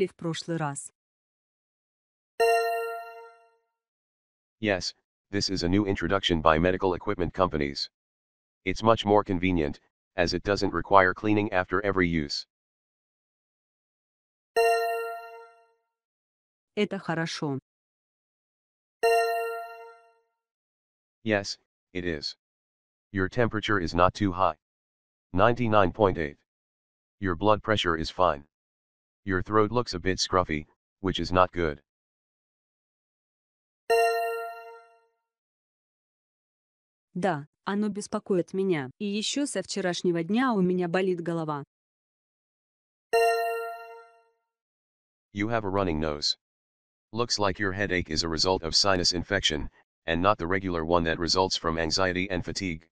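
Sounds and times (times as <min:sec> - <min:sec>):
bell-like chime: 0:02.4 - 0:03.4, 0:14.6 - 0:15.5, 0:19.0 - 0:20.0, 0:33.9 - 0:34.9, 0:43.2 - 0:44.1.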